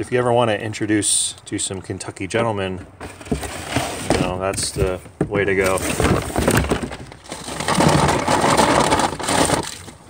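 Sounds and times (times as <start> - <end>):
cardboard rustling and crinkling: 2.8 - 10.0.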